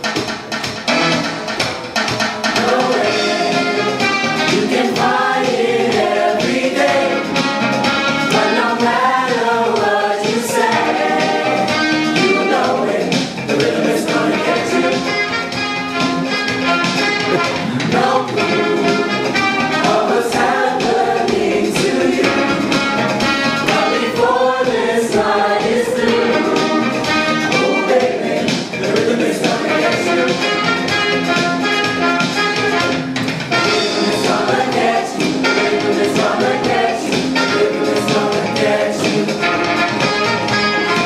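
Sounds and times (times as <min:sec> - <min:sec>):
instrumental backing with steady beat: 0:00.0 - 0:41.0
choir singing in harmony: 0:02.4 - 0:15.4, 0:17.3 - 0:31.8, 0:33.2 - 0:41.0.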